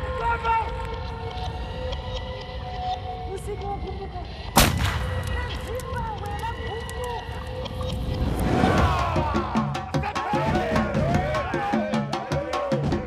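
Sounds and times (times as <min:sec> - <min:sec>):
steady low rumble: 0:03.6 - 0:09.9
loud gunshot: 0:04.6 - 0:05.1.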